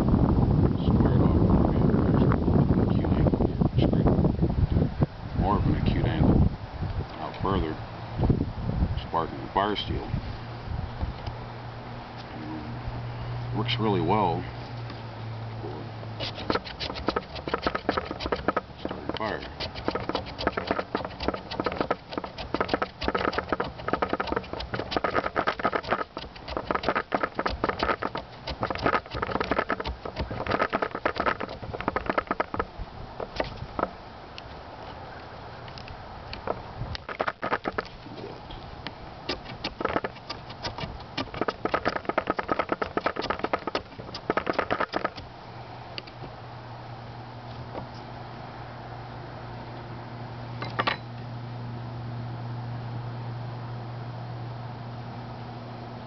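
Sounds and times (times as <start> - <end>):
knife scraping wooden stick: 16.2 - 33.9, 37.0 - 37.9, 39.3 - 45.3.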